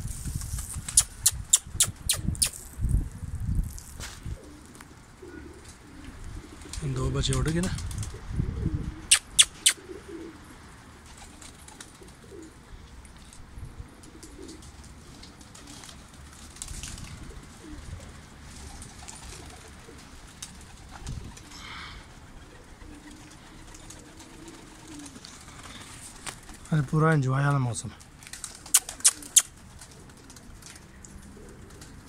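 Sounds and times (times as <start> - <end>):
pigeons cooing softly: 4.1 - 26.8, 27.9 - 32.0.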